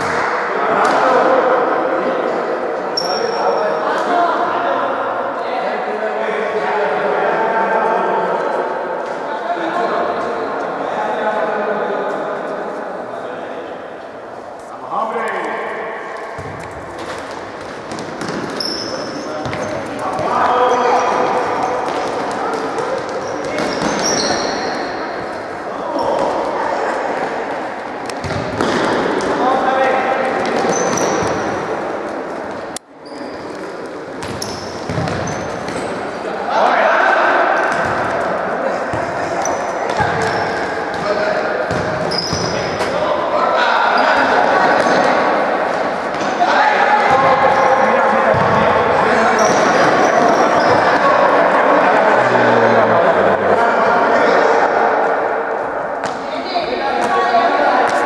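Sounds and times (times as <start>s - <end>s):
ball kicked and bouncing indoors: 16.4s - 18.8s, 19.4s - 20.3s, 28.1s - 29.3s, 34.2s - 35.9s
shoe squeaks: 18.5s - 20.0s, 23.1s - 25.0s, 30.6s - 31.4s, 33.0s - 36.0s, 39.4s - 40.7s, 42.0s - 42.8s, 49.3s - 51.0s
players calling out: 34.3s - 55.1s.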